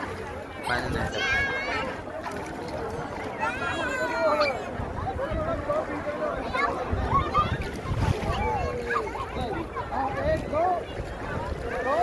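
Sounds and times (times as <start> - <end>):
people talking and calling: 0.0 - 12.0
wind rumbling on microphone: 4.5 - 12.0.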